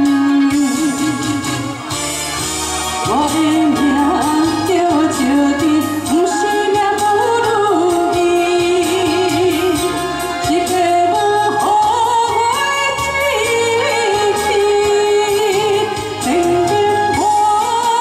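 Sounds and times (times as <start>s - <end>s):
backing track with steady beat: 0.0s - 18.0s
woman singing with vibrato: 0.0s - 18.0s.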